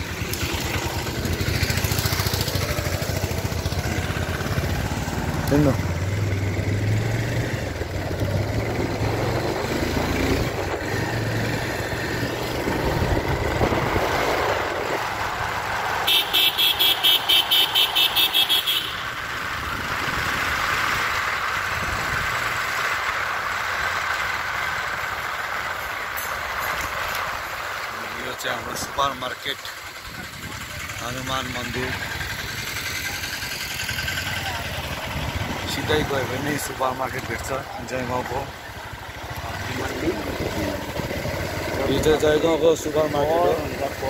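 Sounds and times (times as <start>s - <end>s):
vehicle engine and road noise: 0.0s - 44.0s.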